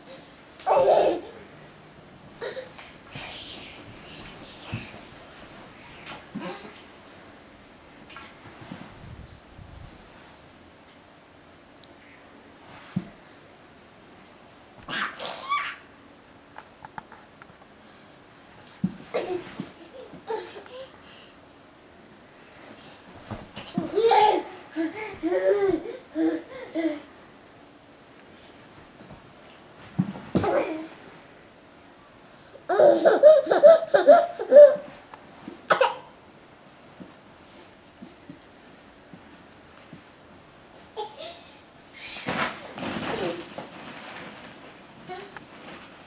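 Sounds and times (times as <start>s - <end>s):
toddler laughing: 0.7s - 1.4s, 23.7s - 27.1s, 32.7s - 35.0s
toddler high-pitched squeal: 14.9s - 15.9s.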